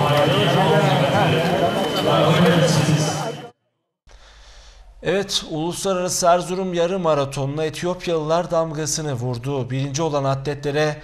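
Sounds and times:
people talking: 0:00.0 - 0:03.5, 0:05.0 - 0:11.0.

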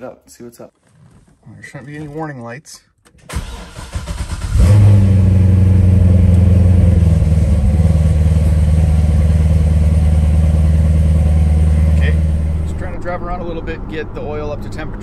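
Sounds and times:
car engine starting and idling: 0:03.0 - 0:15.0.

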